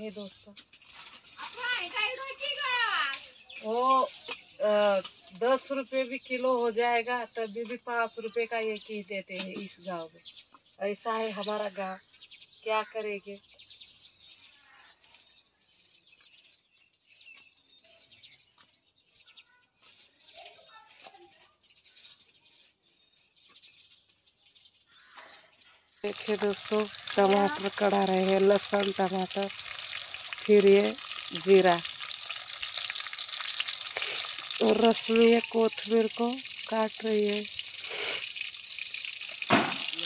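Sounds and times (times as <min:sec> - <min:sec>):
faint bird chirps: 0:00.0 - 0:28.2
food sizzling in hot oil: 0:26.0 - 0:40.0.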